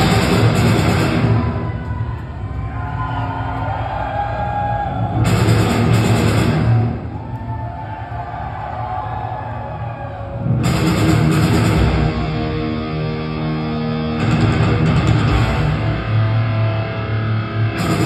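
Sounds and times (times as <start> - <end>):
heavy metal band playing live: 0.0 - 1.8, 5.1 - 7.2, 10.4 - 18.0
guitar melody: 10.6 - 18.0.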